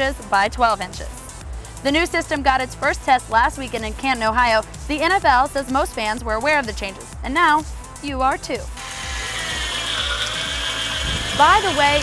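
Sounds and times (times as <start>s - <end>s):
whirring buzz effect: 8.7s - 12.0s.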